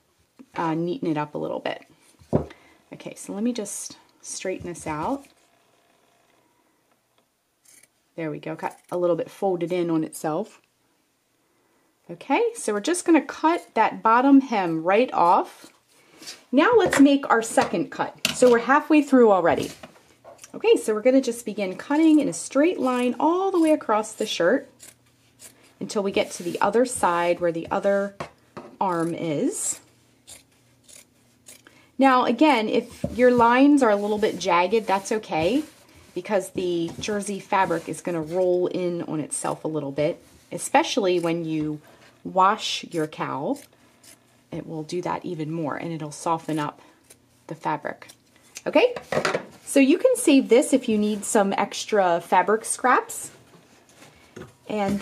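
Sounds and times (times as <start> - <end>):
scissors cutting fabric: 28.8 - 31.6.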